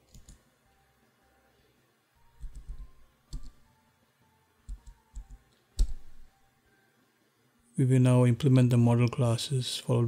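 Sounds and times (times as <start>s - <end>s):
keyboard key clicks: 2.4s - 3.6s, 4.7s - 6.3s.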